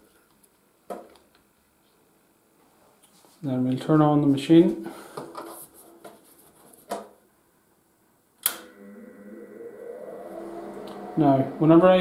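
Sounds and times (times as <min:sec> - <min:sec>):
welder humming: 0:08.5 - 0:12.0.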